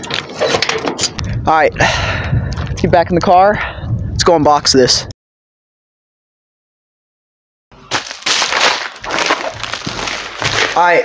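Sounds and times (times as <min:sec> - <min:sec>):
mailer bags crinkling: 0:07.9 - 0:11.0.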